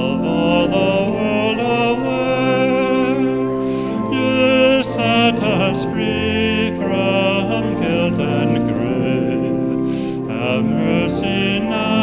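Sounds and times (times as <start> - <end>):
hymn sung with vibrato: 0.0 - 12.0.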